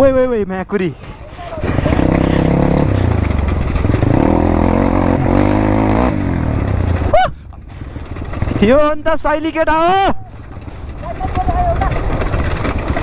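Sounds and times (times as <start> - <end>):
dirt bike engine running: 0.0 - 13.0.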